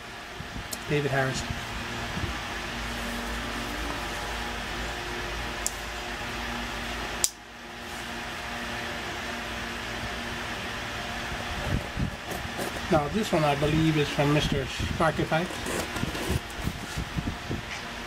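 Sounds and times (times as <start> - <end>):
machine hum: 0.0 - 18.0.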